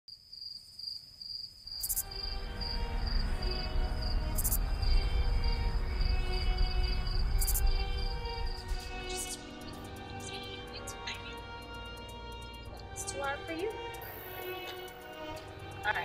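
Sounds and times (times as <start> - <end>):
crickets chirping: 0.1 - 16.0
held music tones: 2.0 - 16.0
low drone: 2.0 - 16.0.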